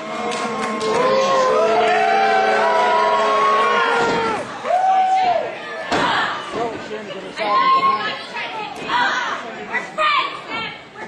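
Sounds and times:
spectators shouting: 0.0 - 6.4
thud: 4.0 - 4.5, 5.9 - 6.6.

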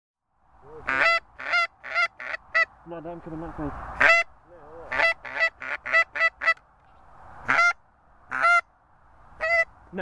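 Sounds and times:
geese honking: 0.7 - 2.8, 4.0 - 6.6, 7.4 - 8.7, 9.4 - 9.8.

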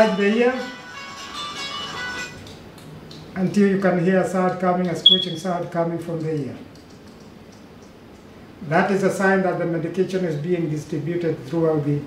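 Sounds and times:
guitar ringtone: 5.1 - 5.4.

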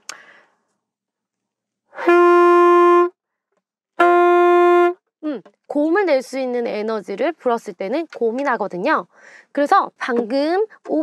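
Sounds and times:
alto saxophone steady note: 2.0 - 3.2, 4.0 - 5.0.

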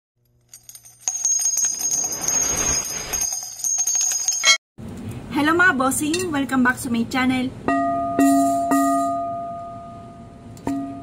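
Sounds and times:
jingling bells: 0.5 - 4.6.

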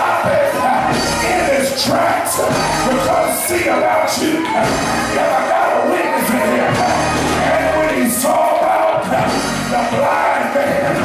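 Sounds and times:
choir singing gospel music: 0.0 - 11.0.

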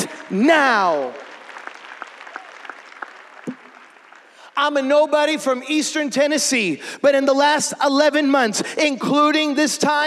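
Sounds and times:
light applause: 0.0 - 4.6.

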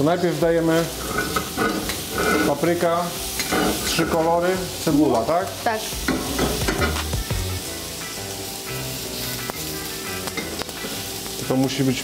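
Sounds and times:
food sizzling on a griddle: 0.0 - 12.0.

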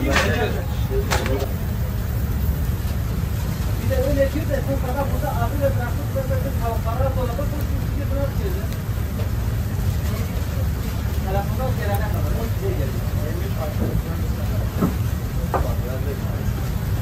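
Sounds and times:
indistinct voices talking: 0.0 - 17.0.

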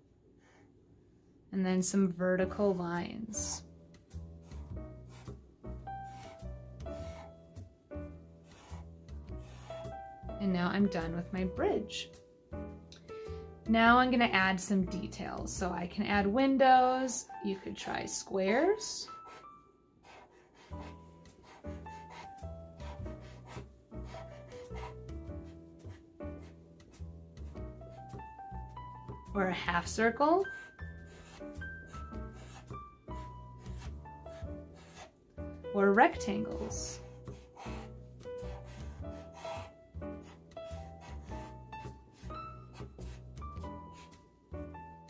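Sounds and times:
quiet background music: 1.5 - 45.0
marker rubbing on paper: 4.4 - 5.4, 6.1 - 7.3, 8.4 - 9.9, 19.2 - 26.6, 30.4 - 35.1, 36.2 - 44.2.

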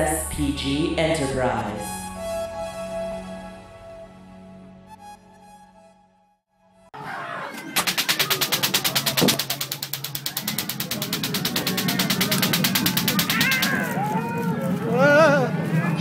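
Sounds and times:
fast pulsing buzz: 7.8 - 14.0.

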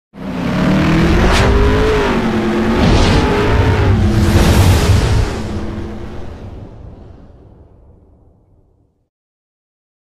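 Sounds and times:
racing car engine running: 0.2 - 6.6
low rumble: 0.7 - 9.0
whooshes: 0.8 - 8.0.

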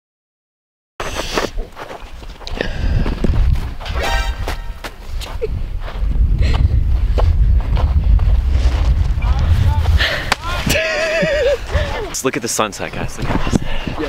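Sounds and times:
footsteps crunching in snow: 1.0 - 6.1, 7.0 - 9.9
wind rumbling on microphone: 1.0 - 12.2, 12.8 - 14.0.

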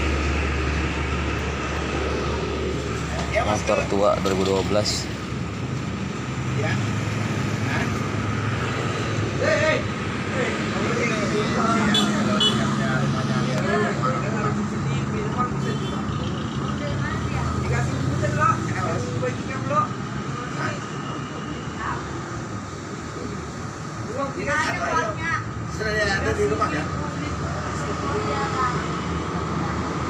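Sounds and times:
indistinct background talk: 0.8 - 30.0.

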